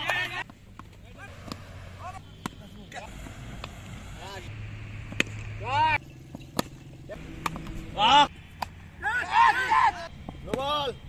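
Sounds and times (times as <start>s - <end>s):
player shouting: 8.9s - 10.1s.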